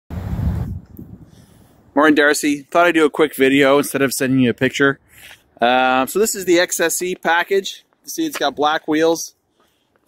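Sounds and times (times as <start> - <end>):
low rumble on microphone: 0.1 - 1.4
faint outdoor background noise: 0.2 - 10.0.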